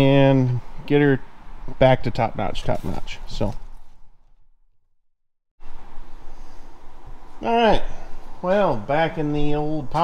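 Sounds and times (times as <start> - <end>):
background noise with low rumble: 5.6 - 10.0.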